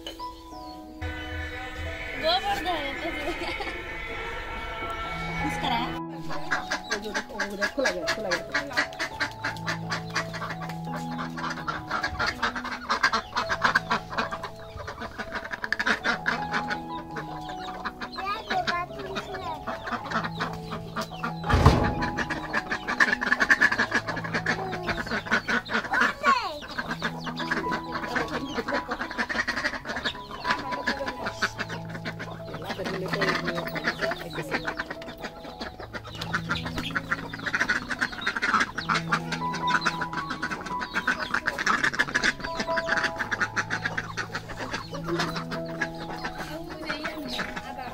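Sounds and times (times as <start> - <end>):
ducks calling: 0.0 - 47.9
hens clucking: 0.0 - 47.9
looping background music: 0.0 - 47.9
sharp knock: 21.4 - 22.4.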